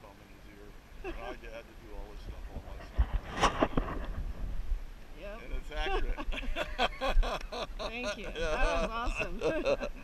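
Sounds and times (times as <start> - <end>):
wind buffeting microphone: 2.0 - 10.0.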